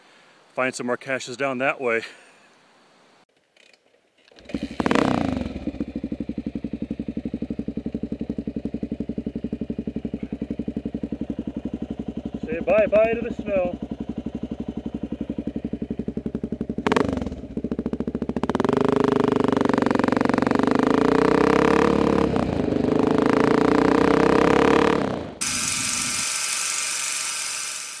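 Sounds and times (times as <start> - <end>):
motorcycle engine running: 4.4 - 28.0
steady hissing: 25.4 - 28.0.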